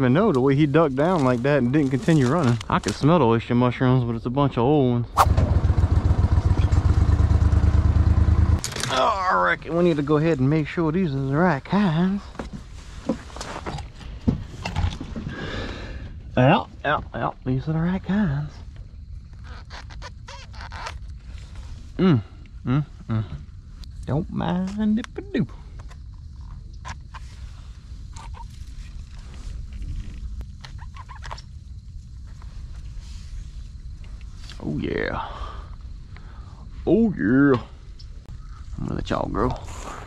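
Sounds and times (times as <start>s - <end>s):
low rumble: 5.0s - 8.6s.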